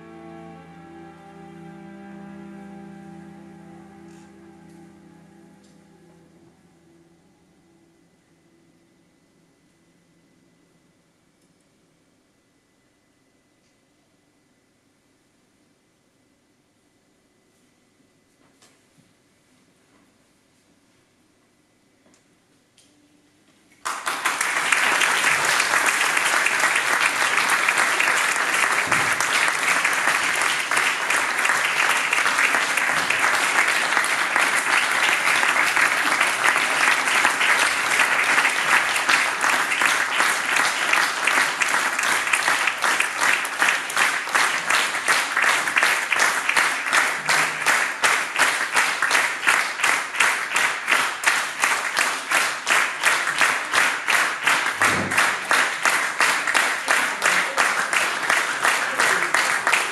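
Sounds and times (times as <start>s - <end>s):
audience applauding: 23.8s - 59.9s
rhythmic clapping in unison: 23.8s - 59.9s.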